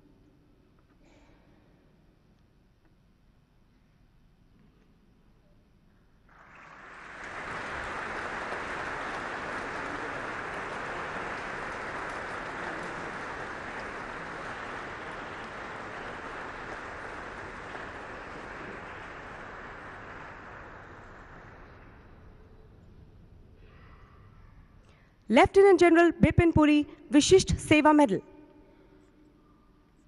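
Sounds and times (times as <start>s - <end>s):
audience applauding: 6.3s - 22.9s.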